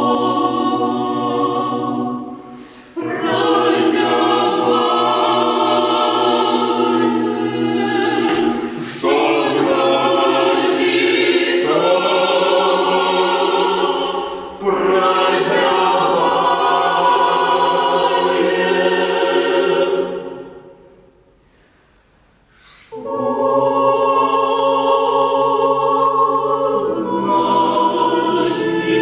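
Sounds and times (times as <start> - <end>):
mixed choir singing a cappella: 0.0 - 21.4, 22.6 - 29.0.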